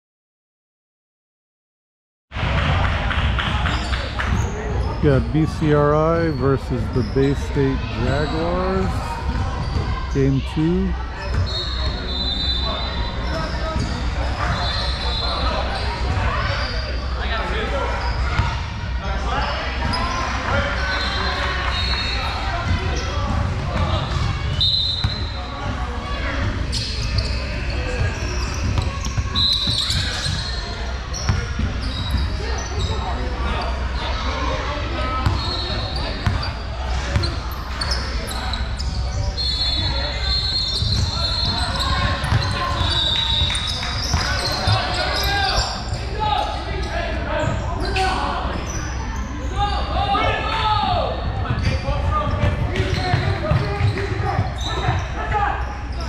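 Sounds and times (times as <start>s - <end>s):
sneaker squeaks: 3.6s - 17.3s, 17.9s - 18.8s, 19.8s - 25.8s, 26.4s - 34.2s, 35.0s - 50.3s, 51.2s - 56.0s
people talking: 3.6s - 21.4s, 25.4s - 56.0s
basketball bouncing on wooden court: 40.8s - 45.0s, 51.4s - 54.4s.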